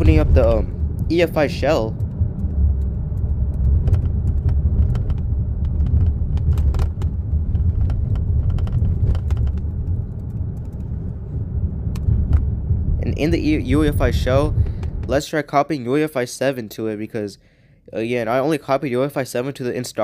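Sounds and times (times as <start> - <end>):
car cabin road rumble: 0.0 - 15.5.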